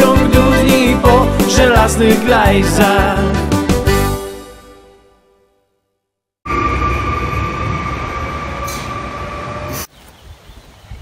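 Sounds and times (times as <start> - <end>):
train high whine: 6.4 - 9.9
train rumble: 6.5 - 9.9.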